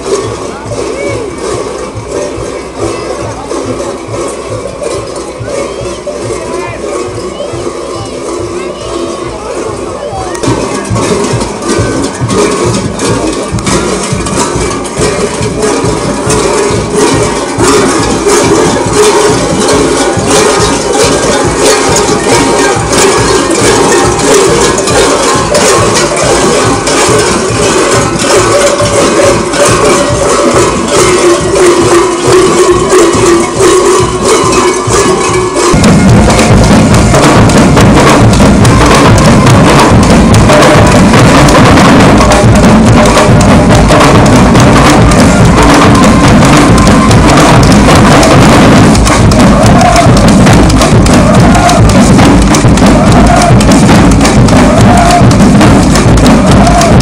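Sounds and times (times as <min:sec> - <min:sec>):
rattling percussion: 0:00.0 - 0:57.0
sustained folk melody: 0:49.4 - 0:50.0, 0:51.2 - 0:53.9.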